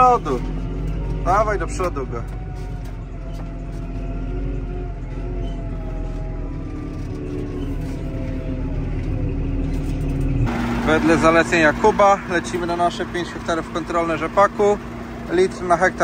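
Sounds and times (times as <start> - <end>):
tractor diesel engine rumbling: 0.0 - 16.0.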